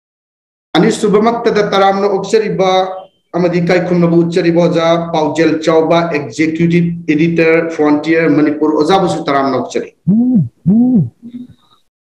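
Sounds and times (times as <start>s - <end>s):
man making drawn-out vocal sounds: 9.9s - 11.6s.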